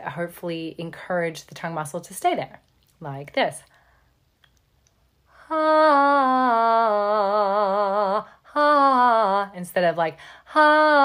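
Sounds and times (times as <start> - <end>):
woman singing held vowel: 5.4 - 9.6, 10.5 - 11.0.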